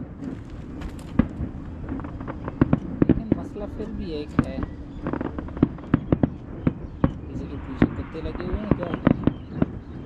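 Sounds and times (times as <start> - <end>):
fireworks bang: 0.0 - 10.0
fireworks crackling pops: 0.0 - 10.0
low rumble: 0.0 - 10.0.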